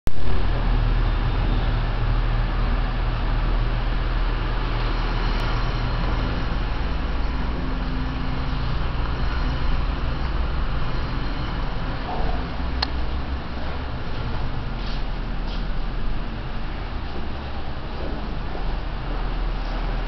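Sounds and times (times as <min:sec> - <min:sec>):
steady low rumble: 0:00.1 - 0:20.0.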